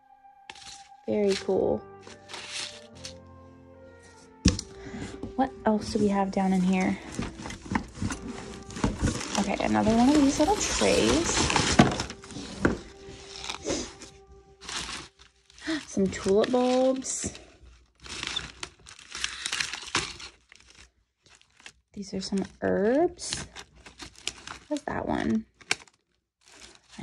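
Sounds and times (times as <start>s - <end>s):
paper and plastic packets rustling: 0.5s - 3.2s, 4.1s - 27.0s
rummaging in a cardboard box: 0.5s - 3.2s, 4.0s - 27.0s.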